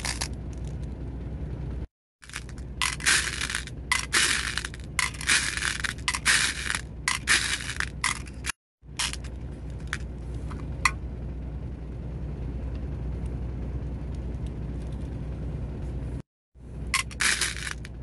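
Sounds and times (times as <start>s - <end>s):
low steady background hum: 0.0s - 18.0s
beads rattling in a glass bowl: 2.2s - 8.2s.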